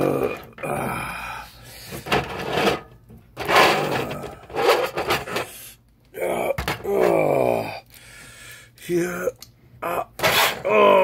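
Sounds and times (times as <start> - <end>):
person grunting and groaning: 0.0 - 1.9, 3.7 - 4.6, 6.1 - 7.9, 9.8 - 11.0.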